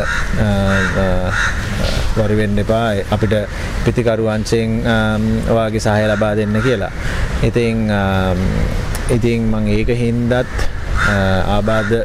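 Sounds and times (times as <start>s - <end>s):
crows cawing: 0.0s - 2.2s, 5.8s - 7.4s, 10.3s - 12.0s
man speaking: 0.0s - 12.0s.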